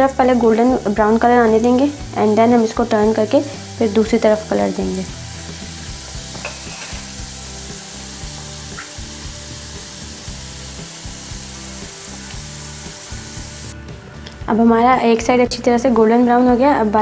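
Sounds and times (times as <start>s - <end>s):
food deep-frying in bubbling oil: 3.1s - 13.7s.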